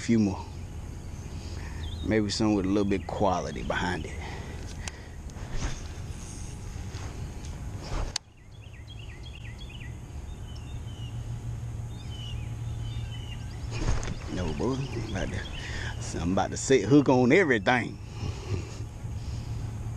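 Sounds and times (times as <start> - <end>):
songbird chirping: 0.0 - 4.4, 8.2 - 17.9
steady low hum: 0.0 - 19.9.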